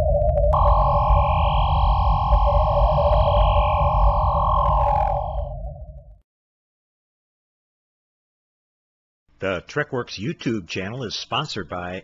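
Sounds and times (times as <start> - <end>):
steady electronic hum: 0.0 - 6.1
deep flickering rumble: 0.0 - 6.2
bright ringing tone: 0.5 - 6.0.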